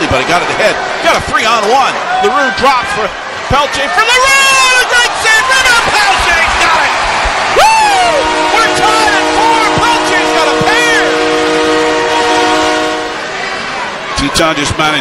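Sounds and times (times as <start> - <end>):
crowd cheering: 0.0 - 15.0
arena goal horn: 8.1 - 13.4.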